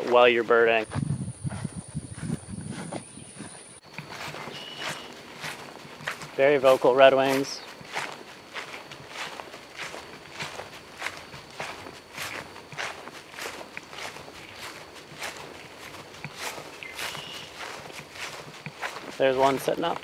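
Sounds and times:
footsteps walking: 0.0s - 20.0s.

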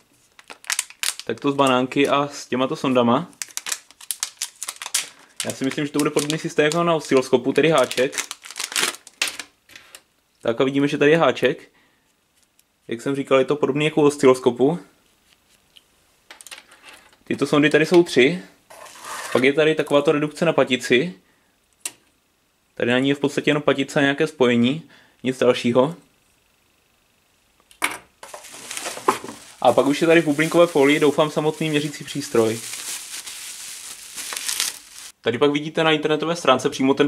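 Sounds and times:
rustle of handling packaging: 0.1s - 2.1s, 2.8s - 10.0s, 28.2s - 35.2s
plastic bag crinkling: 0.2s - 2.1s, 3.3s - 9.6s, 28.2s - 35.2s.

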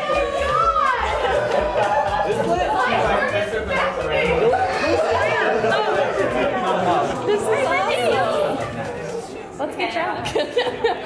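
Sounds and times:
background music with low beat: 0.0s - 9.4s
people talking excitedly: 0.0s - 10.5s.

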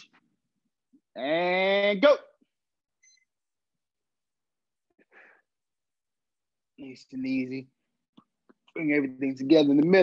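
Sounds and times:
man calling out: 1.1s - 2.4s.

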